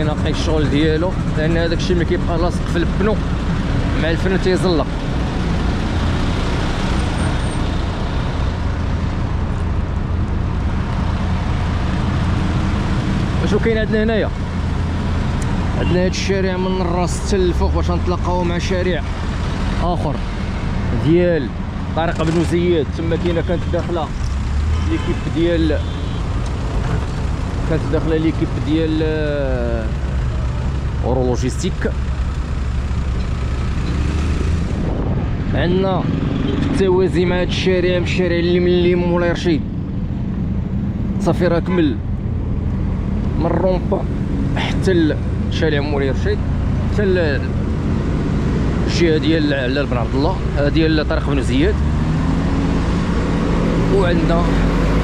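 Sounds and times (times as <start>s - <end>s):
diesel engine rumbling: 0.0s - 55.0s
passing road traffic: 0.0s - 55.0s
wind noise on microphone: 34.3s - 35.6s.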